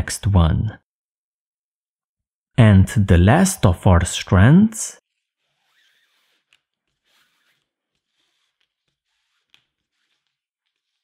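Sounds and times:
faint rustle of cord being handled: 5.0 - 11.0.

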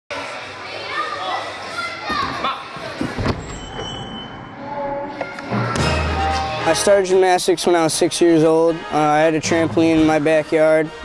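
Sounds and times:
children calling and chattering: 0.1 - 3.2.

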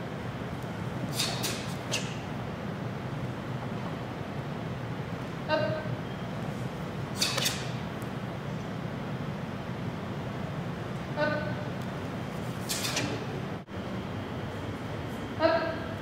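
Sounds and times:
steady low hum: 0.0 - 16.0
uniforms swishing: 1.0 - 2.2.

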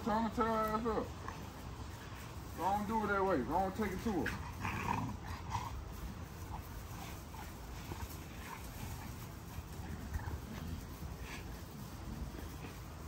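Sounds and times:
steady low rumble: 0.0 - 13.0
puppies growling and yipping: 4.4 - 13.0.

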